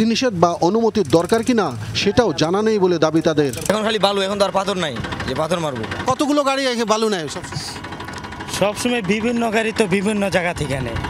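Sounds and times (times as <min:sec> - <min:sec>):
men talking: 0:00.0 - 0:11.0
tractor engine running: 0:00.0 - 0:11.0.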